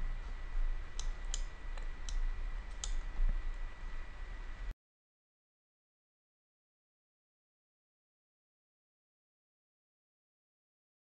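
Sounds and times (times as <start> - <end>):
faint high whine: 0.0 - 4.8
low electrical hum: 0.0 - 4.8
computer mouse clicking: 0.9 - 3.6.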